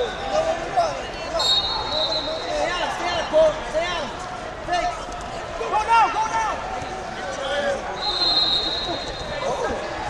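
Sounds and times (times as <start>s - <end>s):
voices of spectators and coaches: 0.0s - 10.0s.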